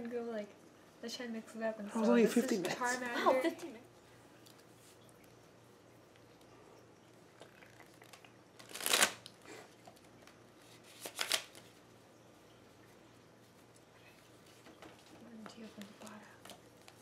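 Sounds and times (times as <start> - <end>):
cards being shuffled: 8.0 - 11.8.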